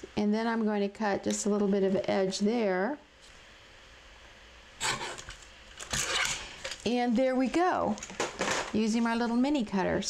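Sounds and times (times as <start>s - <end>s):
paper trimmer blade cutting: 4.8s - 5.3s.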